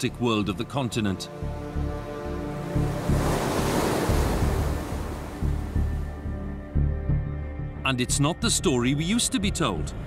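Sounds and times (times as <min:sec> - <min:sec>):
sea waves breaking: 0:01.3 - 0:06.3.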